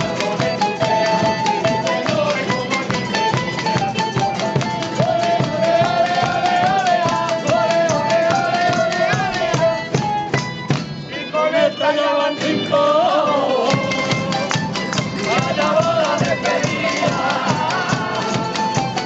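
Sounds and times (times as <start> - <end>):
drum beating: 0.0 - 11.1, 13.6 - 19.0
strummed acoustic guitars: 0.0 - 19.0.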